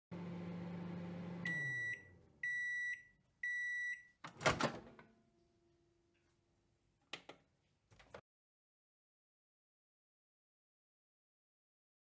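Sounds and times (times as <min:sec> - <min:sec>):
microwave oven humming: 0:00.1 - 0:03.6.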